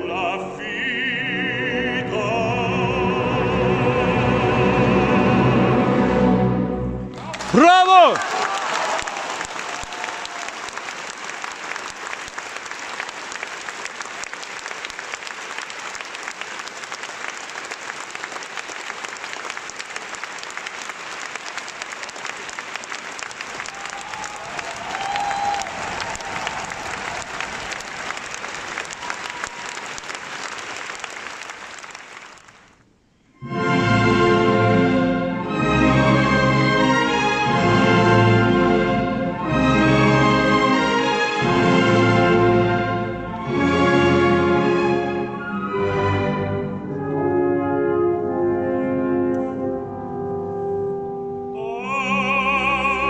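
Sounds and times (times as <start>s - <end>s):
audience applauding: 7.1s - 32.8s.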